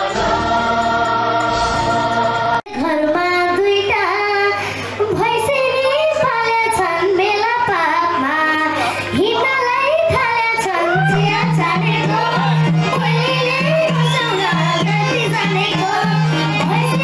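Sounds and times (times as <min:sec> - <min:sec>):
girl singing into microphone: 0:02.7 - 0:17.0.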